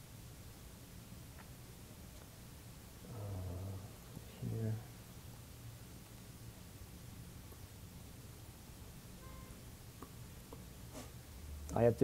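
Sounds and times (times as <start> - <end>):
man humming in hesitation: 3.0 - 4.3.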